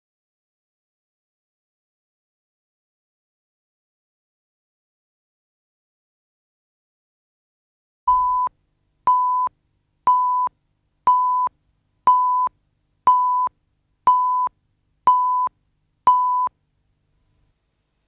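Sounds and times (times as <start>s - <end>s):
countdown beeps: 8.1s - 8.5s, 14.1s - 14.5s, 15.1s - 15.5s.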